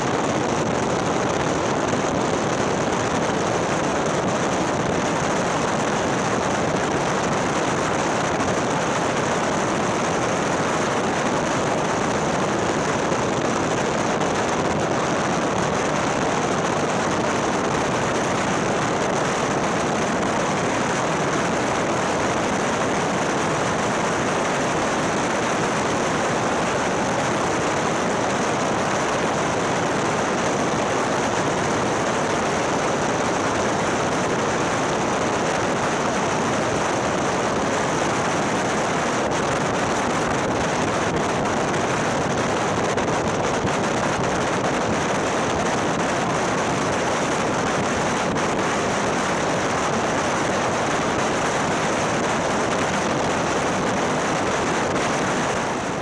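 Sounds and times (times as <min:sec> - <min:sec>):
motorcycle road noise: 0:00.0 - 0:56.0
wind rush: 0:00.0 - 0:56.0.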